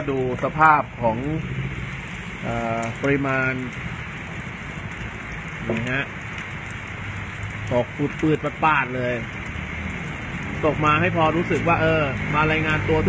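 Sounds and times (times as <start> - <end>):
steady rain falling: 0.0 - 13.0.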